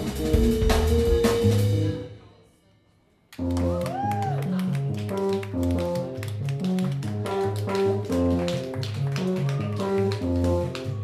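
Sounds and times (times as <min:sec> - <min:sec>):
electric bass: 0:00.0 - 0:02.0.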